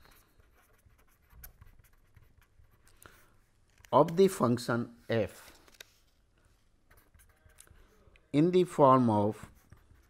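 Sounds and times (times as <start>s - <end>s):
pen scratching on paper: 0.0s - 2.9s, 6.9s - 7.7s, 9.4s - 10.0s.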